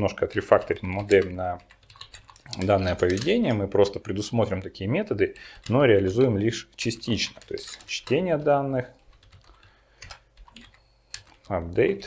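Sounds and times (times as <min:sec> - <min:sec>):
computer keyboard keystrokes: 0:00.4 - 0:03.8, 0:05.4 - 0:08.3, 0:09.0 - 0:11.7.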